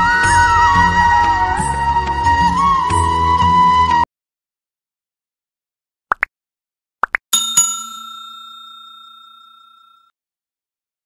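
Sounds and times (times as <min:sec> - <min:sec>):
notification bell chime: 0:07.4 - 0:10.1.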